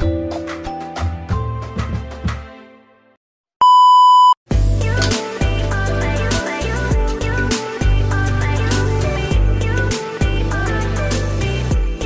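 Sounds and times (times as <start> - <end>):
background music: 0.0 - 3.2, 4.5 - 12.0
steady test tone beep: 3.6 - 4.4.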